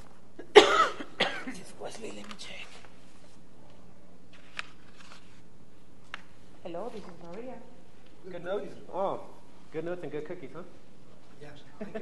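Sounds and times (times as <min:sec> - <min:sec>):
person coughing: 0:00.4 - 0:01.6.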